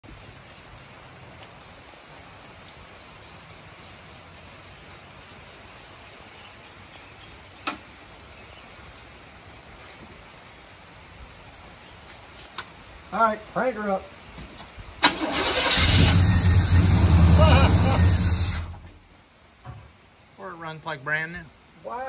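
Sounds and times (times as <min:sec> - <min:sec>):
faint hiss: 0:00.0 - 0:22.0
light ticks: 0:00.1 - 0:07.8.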